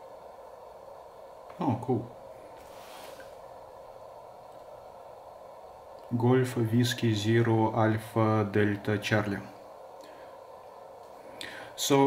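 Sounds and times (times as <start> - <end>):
radio band noise hiss: 1.4 - 12.0.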